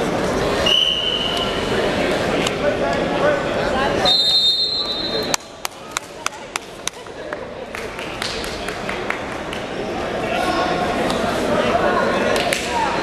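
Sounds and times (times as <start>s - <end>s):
crowd chatter: 0.0s - 13.0s
referee's whistle blast: 4.0s - 5.3s.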